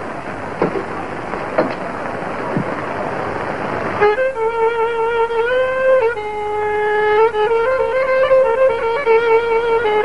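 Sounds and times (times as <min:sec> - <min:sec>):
steady rushing noise: 0:00.0 - 0:10.0
violin long held note: 0:03.8 - 0:10.0.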